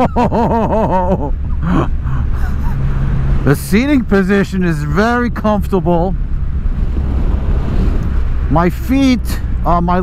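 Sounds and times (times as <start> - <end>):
wind noise on microphone: 6.2 - 8.5.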